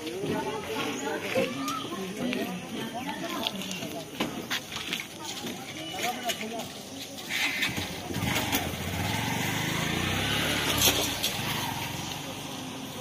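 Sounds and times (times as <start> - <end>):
engine rumble: 7.2 - 13.0.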